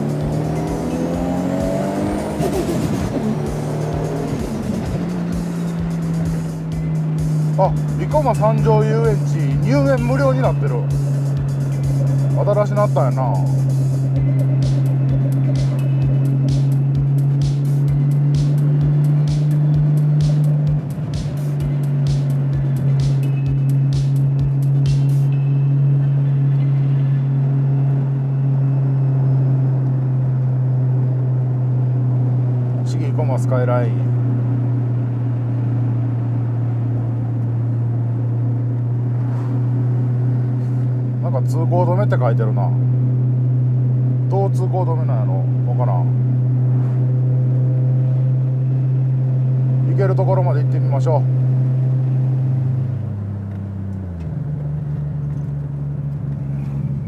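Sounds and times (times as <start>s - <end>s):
car engine drone from inside cabin: 0.0s - 57.0s.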